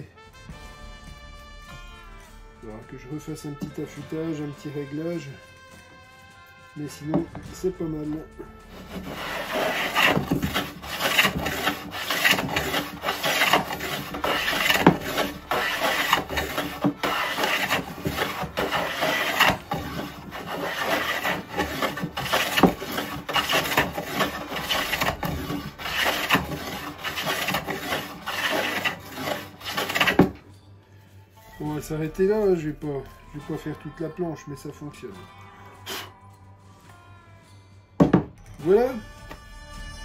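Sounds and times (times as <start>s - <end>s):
hand plane planing a board: 8.7s - 30.4s.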